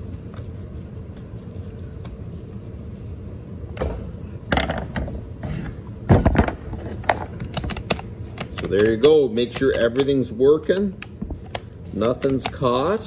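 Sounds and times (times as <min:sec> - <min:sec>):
steady low hum: 0:00.0 - 0:13.0
plastic parts clicking and knocking: 0:06.2 - 0:12.7.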